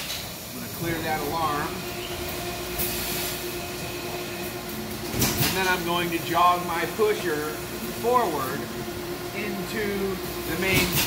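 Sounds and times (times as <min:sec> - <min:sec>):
machinery whirring hum: 0:00.0 - 0:11.0.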